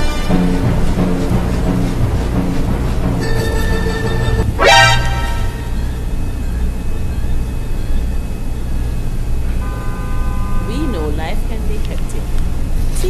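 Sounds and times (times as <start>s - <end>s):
steady low rumble: 0.0s - 13.0s
car horn: 3.2s - 5.7s, 9.5s - 11.3s.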